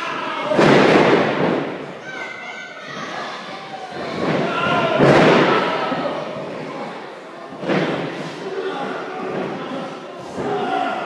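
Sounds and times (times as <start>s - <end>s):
spectators shouting and chatting: 0.0s - 11.0s.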